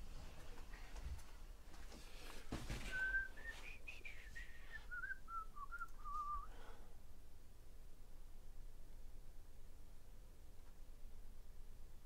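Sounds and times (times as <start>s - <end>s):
person whistling a tune: 2.8s - 6.6s.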